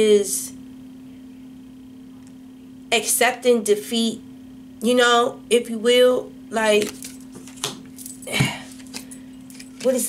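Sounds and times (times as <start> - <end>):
low steady hum: 0.0 - 10.0
playing cards knocking on table: 6.8 - 8.6.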